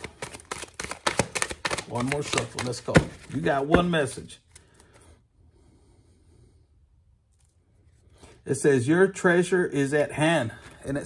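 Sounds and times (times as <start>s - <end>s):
cards being shuffled: 0.0s - 5.1s.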